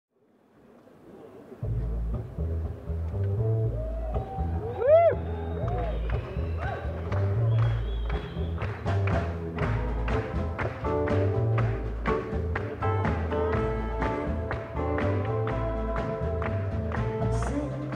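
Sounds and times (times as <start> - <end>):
upright double bass line: 1.6 - 17.9
rhythmic drum taps: 8.0 - 17.9.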